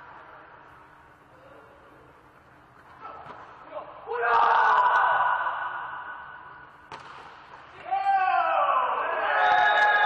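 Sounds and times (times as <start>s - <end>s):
players shouting in a hall: 2.9s - 6.6s, 7.7s - 10.0s
hand slapping a volleyball: 6.9s - 7.6s.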